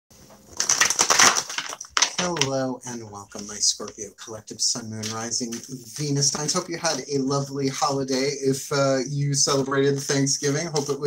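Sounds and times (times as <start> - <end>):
cards being shuffled: 0.5 - 4.0, 5.0 - 8.3
man talking: 2.0 - 11.0.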